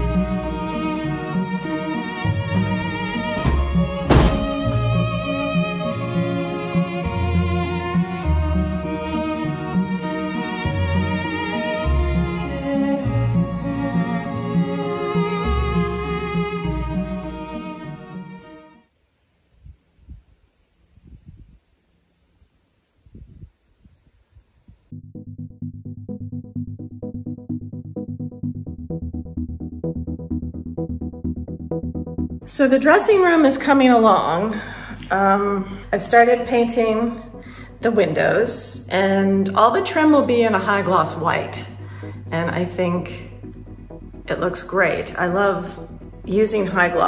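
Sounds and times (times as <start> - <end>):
bowed strings music: 0.0 - 18.8, 32.4 - 47.0
wooden window pushed shut: 2.5 - 5.1
steady high hiss: 18.9 - 24.9.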